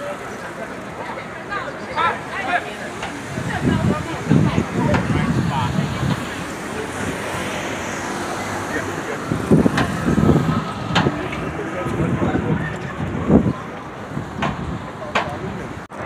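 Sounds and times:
scattered crowd voices: 0.0s - 16.0s
vehicle traffic passing: 0.0s - 16.0s
low buffeting surges: 0.2s - 16.0s.

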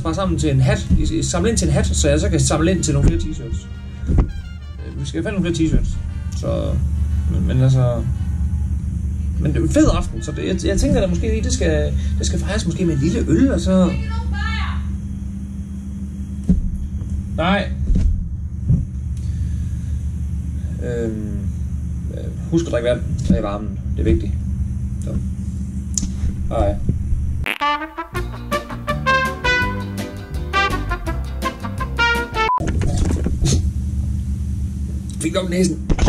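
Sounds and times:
steady low rumble: 0.0s - 14.2s, 14.8s - 22.2s
steady low hum: 0.0s - 27.4s, 32.6s - 36.0s
man spluttering: 27.5s - 27.9s.

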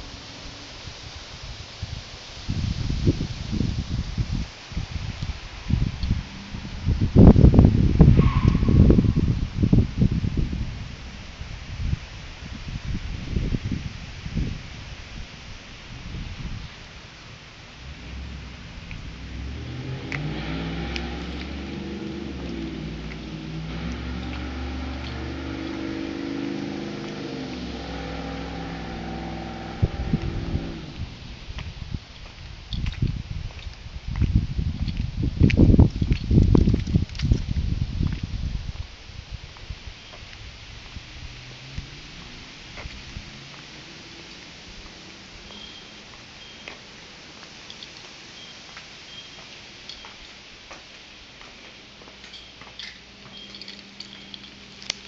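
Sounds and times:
steady hiss: 0.0s - 8.2s
large vehicle engine passing: 4.8s - 13.5s, 15.8s - 31.6s, 40.4s - 47.3s
low thumps: 16.0s - 31.8s
faint footsteps: 41.8s - 43.7s, 44.3s - 55.0s
faint high chirps: 45.5s - 46.8s, 48.3s - 50.2s, 52.3s - 54.6s.

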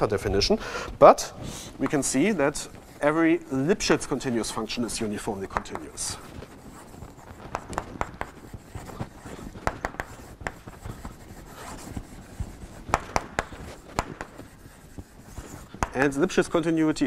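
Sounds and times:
chalk scratching on blackboard: 0.2s - 17.0s.

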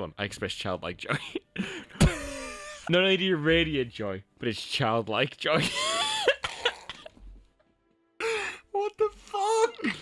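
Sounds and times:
person laughing: 1.1s - 2.9s, 5.6s - 7.2s.

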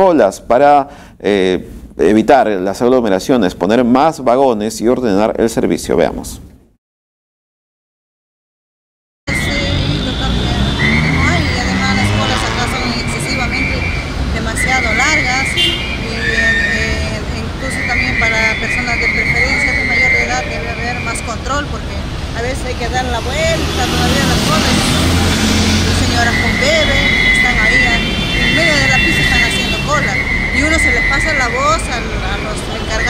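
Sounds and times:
high-pitched tone: 9.3s - 22.0s, 22.8s - 33.0s
heavy vehicle passing: 9.3s - 33.0s
traffic noise: 9.3s - 33.0s
woman talking: 9.3s - 33.0s.

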